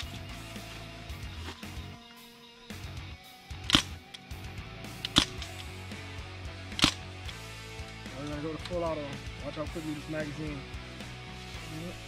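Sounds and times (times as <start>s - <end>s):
background music: 0.0s - 12.0s
airsoft rifle shots: 3.6s - 4.0s, 5.0s - 5.6s, 6.7s - 7.0s.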